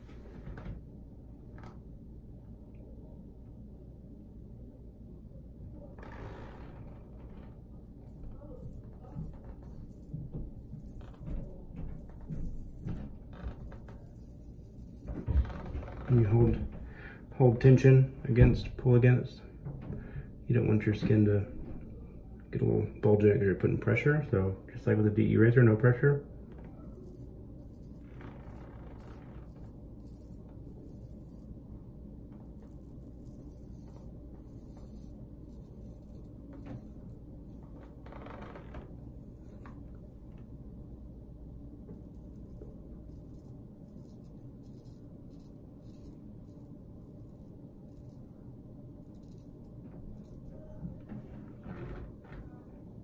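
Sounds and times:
low room hum: 0:00.0 - 0:53.0.

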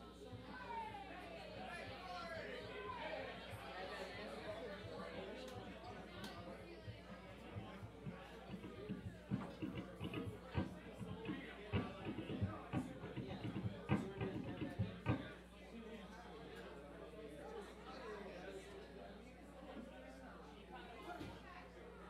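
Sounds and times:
crowd chatter: 0:00.0 - 0:22.0
sharp knocks and low thumps: 0:07.5 - 0:15.4.

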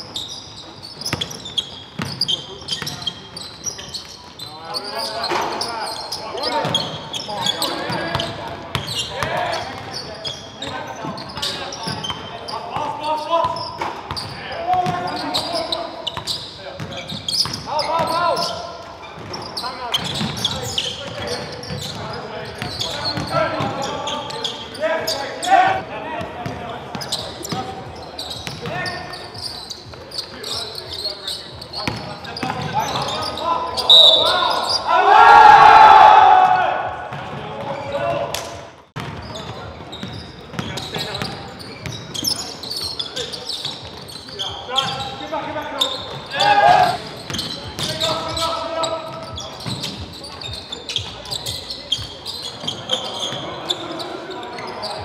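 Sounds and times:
players calling and shouting: 0:00.0 - 0:55.0
basketball bouncing on hardwood: 0:39.0 - 0:39.3.

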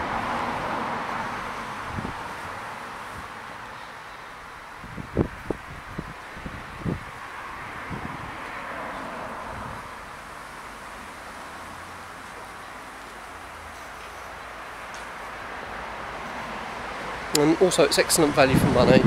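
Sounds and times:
outdoor background hiss: 0:00.0 - 0:18.9.

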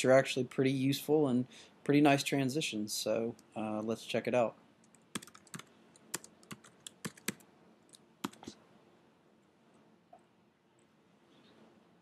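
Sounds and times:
typing on a computer keyboard: 0:04.9 - 0:08.5.

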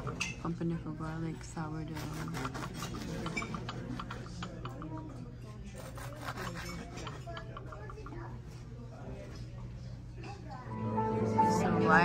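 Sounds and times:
knife sawing through crusty bread: 0:02.0 - 0:03.4, 0:05.7 - 0:07.3.

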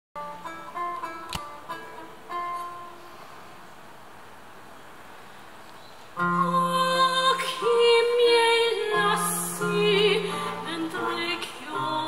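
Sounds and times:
plucked lute notes: 0:00.2 - 0:03.0, 0:06.2 - 0:08.0, 0:08.8 - 0:12.0
sharp click: 0:01.2 - 0:01.5.

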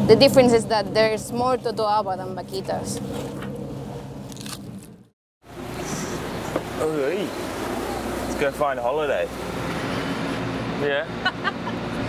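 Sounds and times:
ship engine hum: 0:00.0 - 0:12.0
hand tool crunching into fish: 0:04.3 - 0:04.9.

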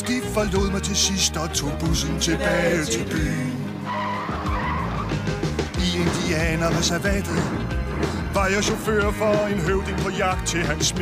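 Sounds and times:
backing music: 0:00.0 - 0:11.0
person singing: 0:02.0 - 0:03.6
cartoon tire squeal effect: 0:03.8 - 0:05.2.

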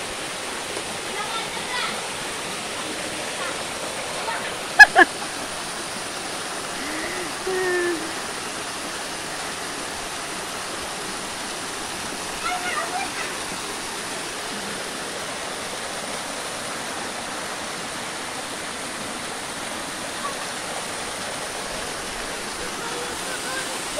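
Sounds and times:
stream water running over rocks: 0:00.0 - 0:23.9
voices calling: 0:21.7 - 0:23.9.

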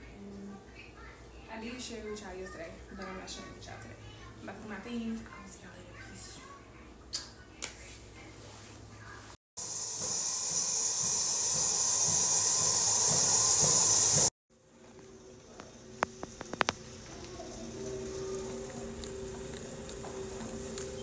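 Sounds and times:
loud steady hiss: 0:09.6 - 0:21.0.

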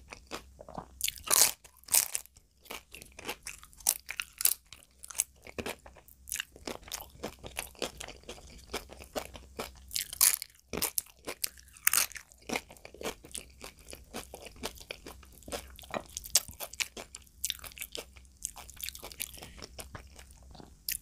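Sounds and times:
chewing crisp papadum: 0:00.0 - 0:21.0.

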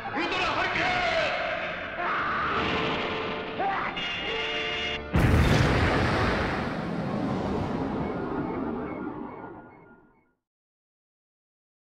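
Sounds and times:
deep rumbling explosion: 0:05.2 - 0:09.9.

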